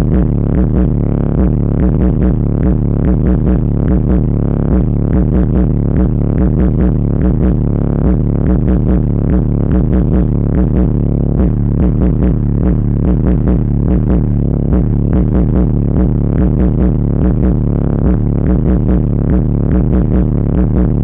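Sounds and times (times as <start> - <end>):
bass-heavy electronic music: 0.0 - 21.0.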